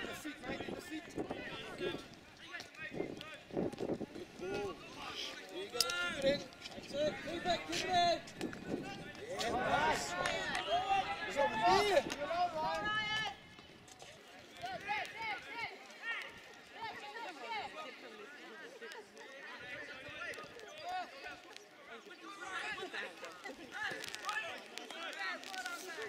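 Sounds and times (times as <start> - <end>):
people shouting and calling out: 0.0 - 26.0.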